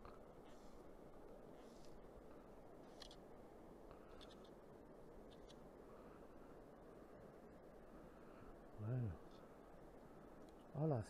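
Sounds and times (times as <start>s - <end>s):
faint river murmur: 0.0s - 11.0s.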